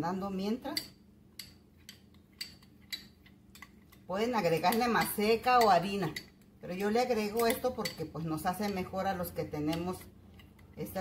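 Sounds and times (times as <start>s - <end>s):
metal spoon clinking glass bowl: 4.5s - 6.3s, 7.2s - 8.9s.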